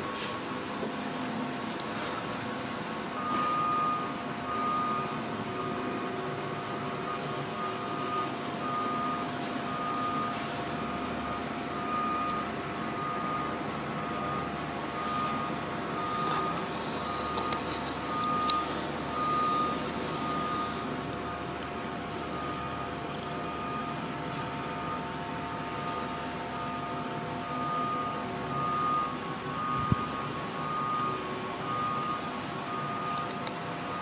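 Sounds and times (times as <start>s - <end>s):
steady background hum: 0.0s - 34.0s
high-pitched beep: 3.2s - 5.8s, 7.1s - 21.5s, 25.8s - 34.0s.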